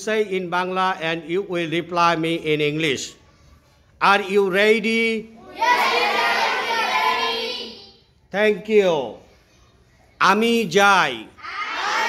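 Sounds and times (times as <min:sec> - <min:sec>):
children answering in unison: 0:05.4 - 0:08.1, 0:11.4 - 0:12.0.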